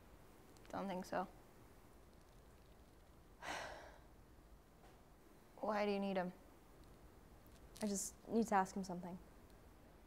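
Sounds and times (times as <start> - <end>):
person sighing: 3.4 - 4.0.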